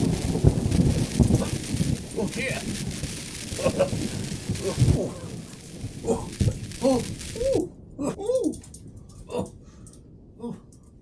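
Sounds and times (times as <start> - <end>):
man crying out oh: 6.0 - 8.6.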